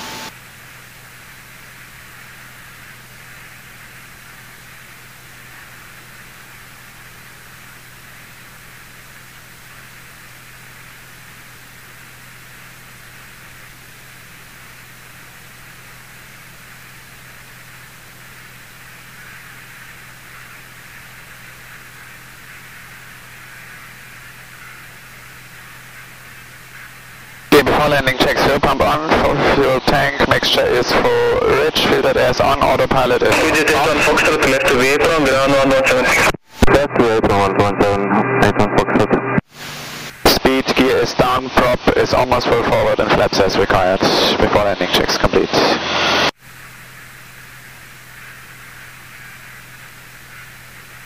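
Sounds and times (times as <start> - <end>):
cockpit intercom hiss: 0.0 - 51.0
low steady hum: 0.0 - 51.0.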